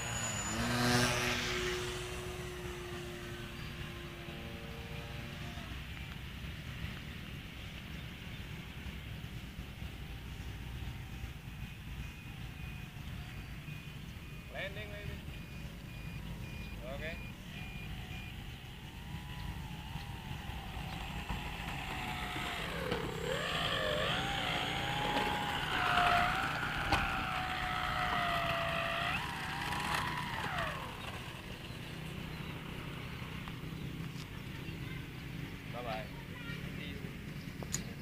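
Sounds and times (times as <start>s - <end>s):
model aeroplane engine running: 0.0s - 7.1s, 17.8s - 38.0s.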